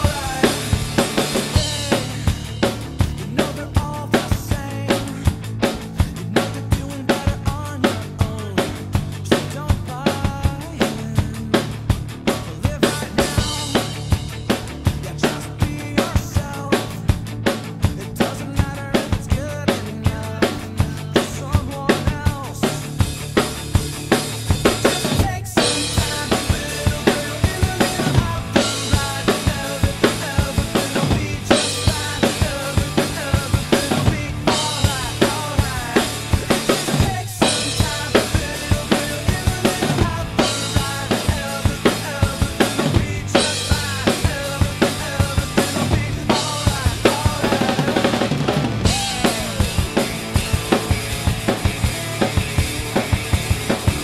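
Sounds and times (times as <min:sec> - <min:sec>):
acoustic drum kit playing: 0:00.0 - 0:54.0
pop-punk song with guitars: 0:00.0 - 0:54.0.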